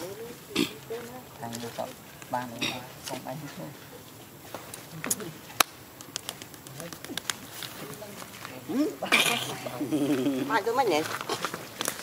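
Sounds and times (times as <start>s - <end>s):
sharp clicks and taps: 5.1s - 7.4s.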